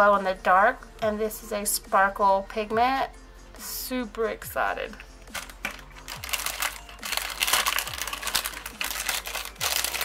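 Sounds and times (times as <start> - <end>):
plastic bag crinkling and rustling: 5.3 - 10.0.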